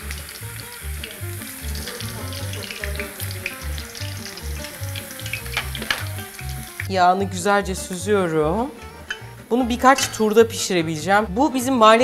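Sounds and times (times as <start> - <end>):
sizzle and crackle of frying: 0.0 - 6.9.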